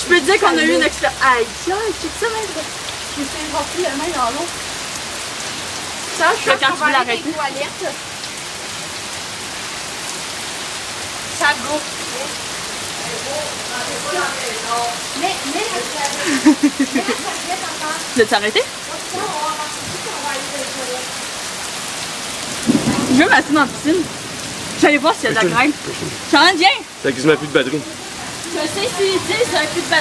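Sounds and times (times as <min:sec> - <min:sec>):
heavy rain pouring: 0:00.0 - 0:30.0.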